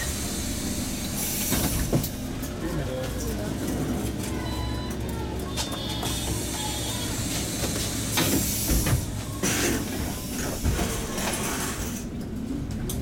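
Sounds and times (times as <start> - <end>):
bus engine and road rumble: 0.0 - 13.0.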